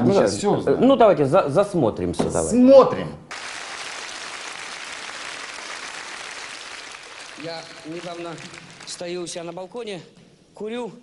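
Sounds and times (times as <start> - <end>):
audience applauding: 3.3 - 9.6.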